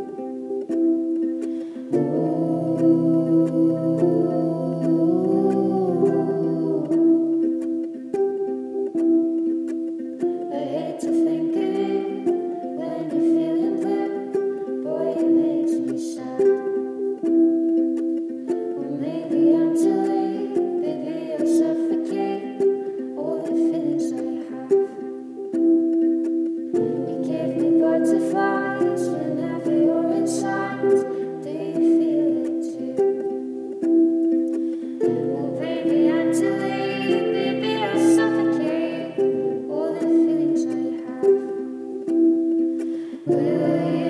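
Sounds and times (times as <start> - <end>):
plucked acoustic string instrument: 0.0 - 44.0
woman singing: 1.8 - 7.6, 10.5 - 16.9, 18.8 - 25.2, 26.8 - 33.5, 34.9 - 41.9, 43.1 - 44.0.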